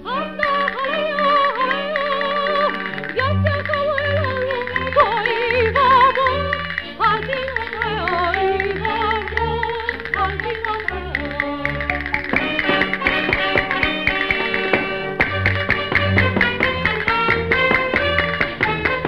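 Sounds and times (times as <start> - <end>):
woman singing with vibrato: 0.0 - 11.8
piano chords: 0.0 - 19.0
rapid castanet clicks: 0.4 - 19.0.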